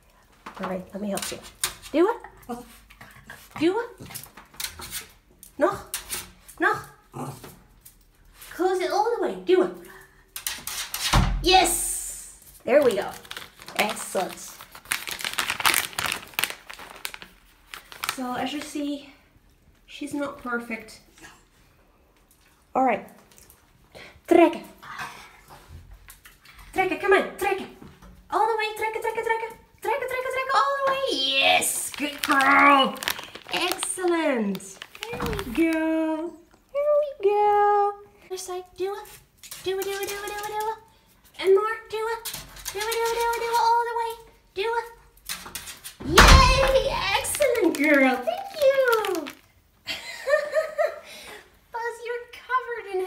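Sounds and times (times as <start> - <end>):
woman baby-talking: 28.4 - 39.0, 46.1 - 49.4.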